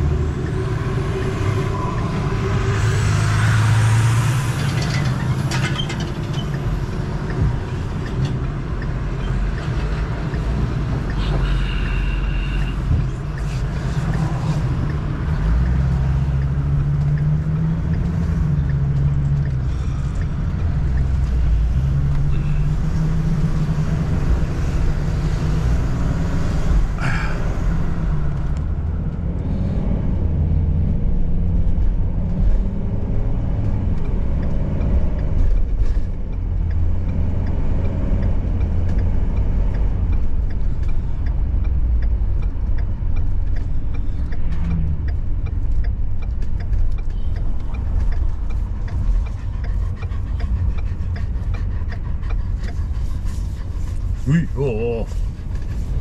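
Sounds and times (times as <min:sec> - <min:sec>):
vehicle engine and road drone: 0:00.0 - 0:56.0.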